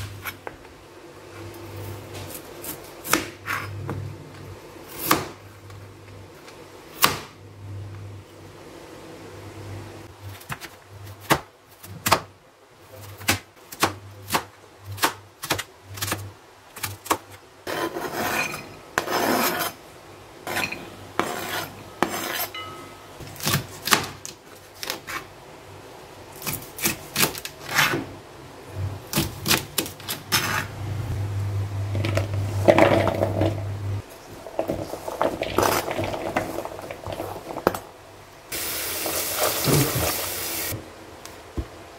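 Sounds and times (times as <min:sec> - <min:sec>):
vegetables scraping on board: 0:17.7 - 0:19.8, 0:20.5 - 0:22.5, 0:34.2 - 0:37.8.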